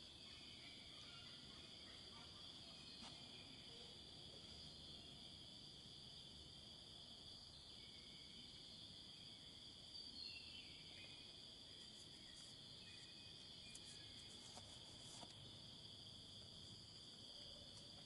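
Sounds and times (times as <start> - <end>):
high-pitched insect chorus: 0.0 - 18.0.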